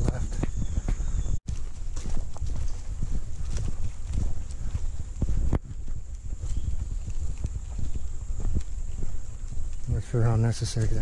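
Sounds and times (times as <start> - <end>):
microphone handling rumble: 0.0 - 9.9
footsteps on forest trail: 0.0 - 11.0.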